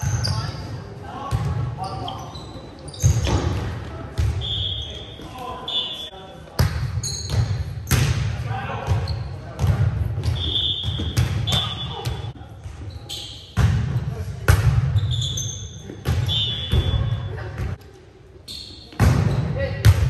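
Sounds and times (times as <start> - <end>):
sneakers squeaking on hardwood: 1.3 - 6.0, 7.0 - 8.0, 14.8 - 17.4.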